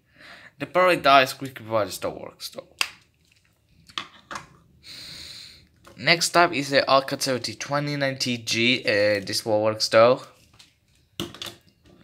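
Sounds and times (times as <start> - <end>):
person breathing: 0.0 - 0.6, 4.8 - 5.8.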